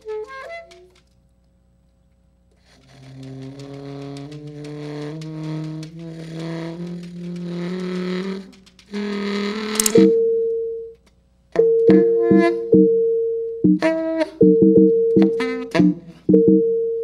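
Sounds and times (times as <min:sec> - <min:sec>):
tenor saxophone low notes: 0:02.5 - 0:10.2, 0:11.8 - 0:13.0, 0:13.6 - 0:16.6
sharp click: 0:09.8 - 0:10.1
computer-generated tones: 0:11.6 - 0:16.8.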